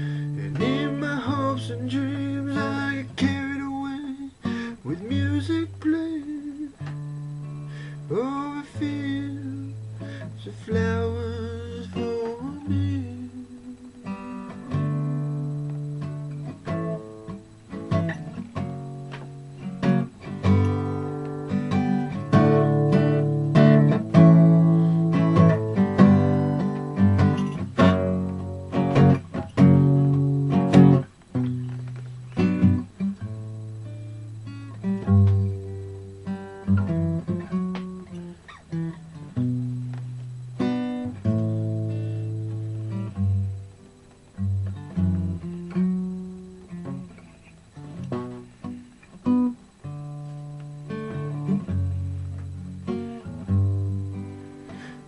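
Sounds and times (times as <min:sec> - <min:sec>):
acoustic guitar chords ringing: 0:00.0 - 0:55.0.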